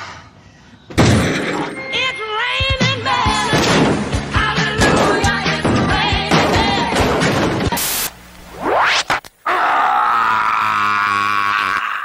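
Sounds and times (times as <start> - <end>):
man screaming: 9.5 - 12.0.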